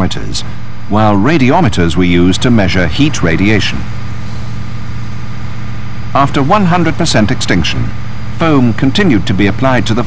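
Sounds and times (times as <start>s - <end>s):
pump engine droning: 0.0s - 10.0s
rushing noise: 0.0s - 10.0s.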